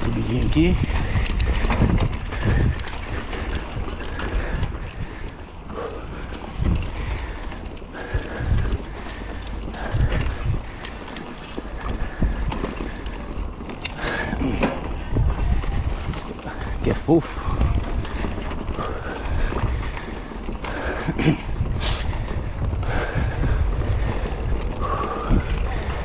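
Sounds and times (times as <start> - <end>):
bike rattling with clicks: 0.0 - 26.0
bike tyres rolling over dirt: 0.0 - 26.0
wind on microphone: 0.0 - 26.0.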